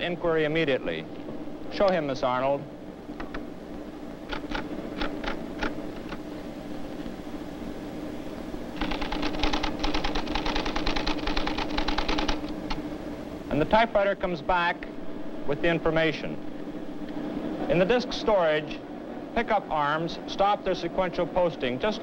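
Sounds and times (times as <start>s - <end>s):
steady low hum: 0.0s - 22.0s
rapid typewriter strikes: 4.3s - 5.8s, 8.8s - 12.5s
typewriter keystrokes: 8.8s - 12.8s.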